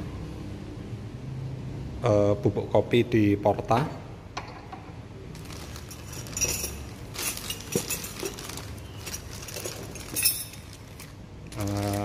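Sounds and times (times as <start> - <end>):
plastic packaging crinkling: 5.3 - 12.0
metal filter basket clinking: 5.4 - 11.1
hand rummaging in cardboard box: 5.4 - 12.0.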